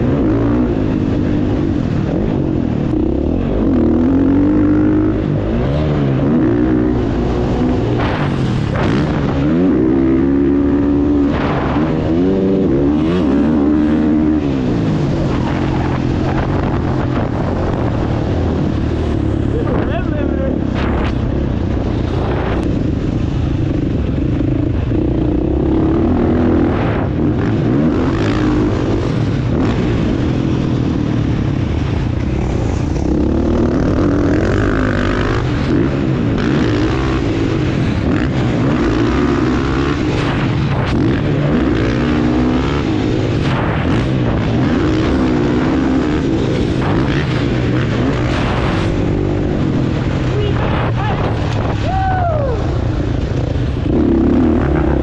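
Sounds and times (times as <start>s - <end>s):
dirt bike engine revving: 0.0s - 51.9s, 52.6s - 55.0s.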